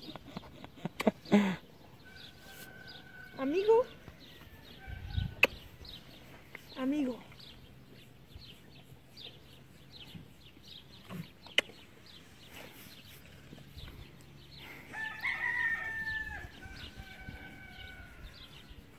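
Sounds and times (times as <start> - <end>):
small birds chirping: 0.0 - 18.9
rooster crowing: 14.9 - 18.6.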